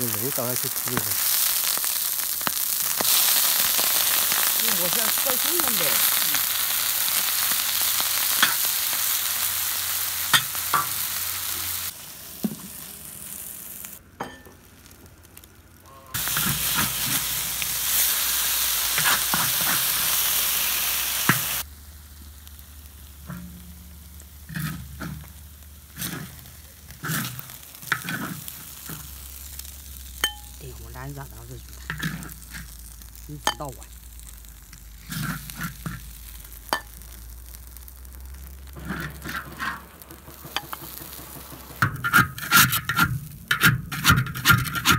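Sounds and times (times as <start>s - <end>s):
pork sizzling in oil: 0.0s - 44.9s
metal spatula scraping wok: 23.3s - 29.2s, 31.6s - 32.8s, 34.9s - 36.2s, 38.7s - 44.9s.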